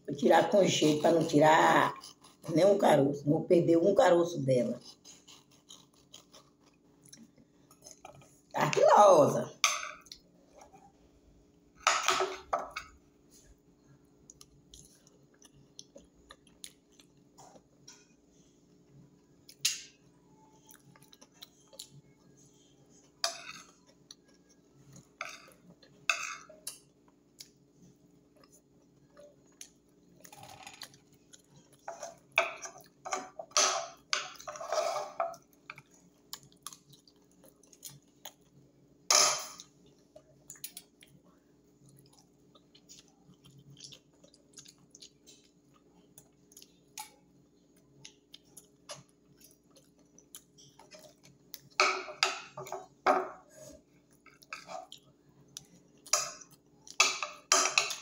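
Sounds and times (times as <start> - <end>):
faint low hum: 0.0 - 58.0
person chewing food: 1.9 - 2.5, 4.8 - 8.5, 13.2 - 58.0.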